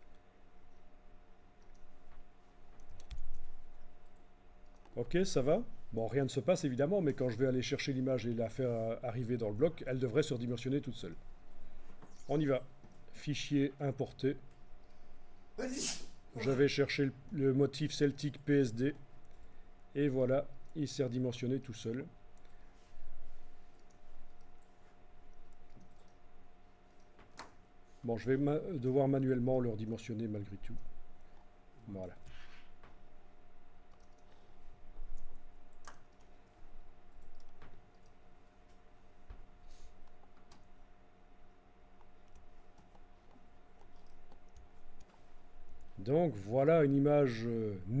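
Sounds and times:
low steady hum: 0.0 - 48.0
computer mouse clicks: 1.6 - 5.0, 23.7 - 26.2, 33.9 - 38.8, 42.0 - 45.2
mouse and keyboard clicks: 2.7 - 3.9, 42.0 - 45.2.

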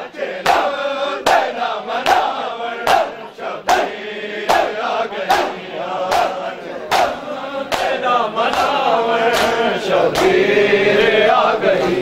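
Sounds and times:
men chanting: 0.0 - 12.0
chest slaps in unison: 0.4 - 3.9, 4.5 - 10.4.

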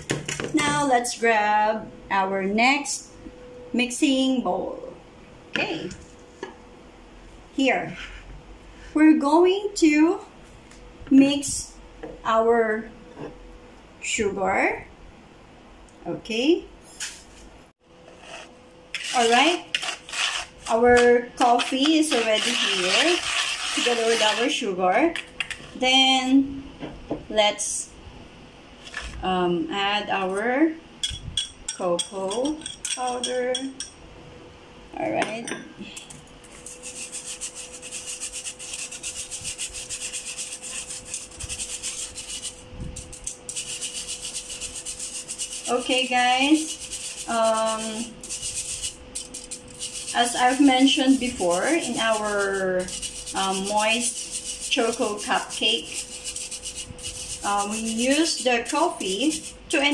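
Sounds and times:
whisk scraping in metal sieve: 18.1 - 24.7, 36.4 - 59.9
faint scraping in bowl: 21.6 - 24.5.

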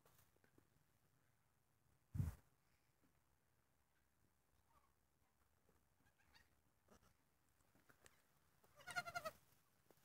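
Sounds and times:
goat kid bleating: 8.7 - 9.4.

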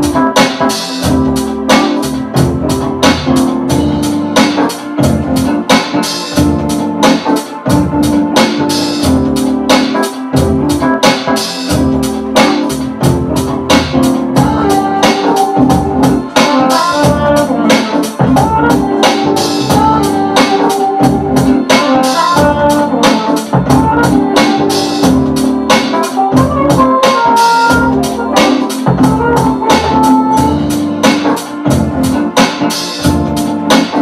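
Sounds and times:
hip-hop beat on a sampler: 0.0 - 34.0.

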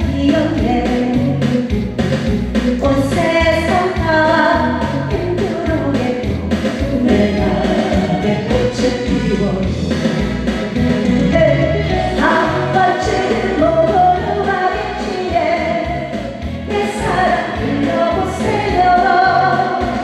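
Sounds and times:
woman singing into microphone: 0.0 - 1.6, 2.8 - 9.9, 11.2 - 20.0
backing track with steady beat: 0.0 - 20.0.

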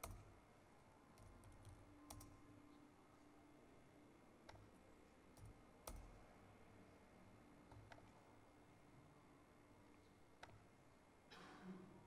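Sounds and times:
keyboard and mouse clicks: 0.0 - 0.3, 1.2 - 2.4.

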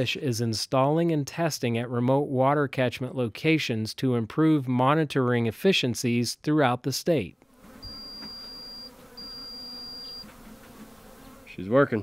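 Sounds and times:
faint steady buzz: 7.4 - 12.0
high electronic beeps: 7.8 - 10.2.

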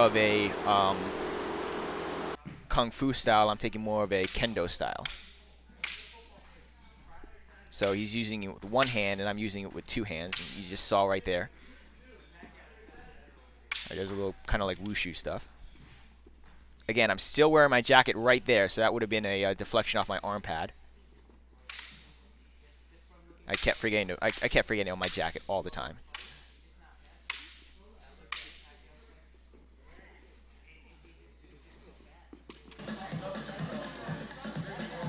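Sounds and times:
man talking: 0.0 - 1.2
low steady hum: 0.0 - 2.4.

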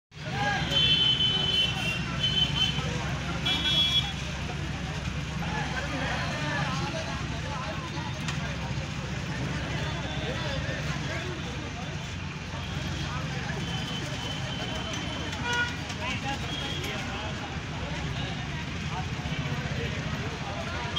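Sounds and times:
crowd chatter: 0.1 - 20.9
low traffic hum: 0.1 - 20.9
vehicle horns honking: 0.5 - 4.2, 13.6 - 17.0.

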